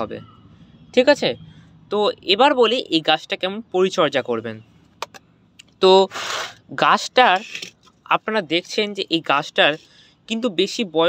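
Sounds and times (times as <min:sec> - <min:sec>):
man talking: 0:05.6 - 0:11.0.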